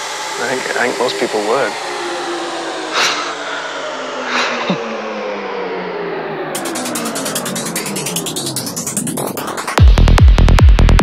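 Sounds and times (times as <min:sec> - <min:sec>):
droning electronic tone: 0:00.0 - 0:10.7.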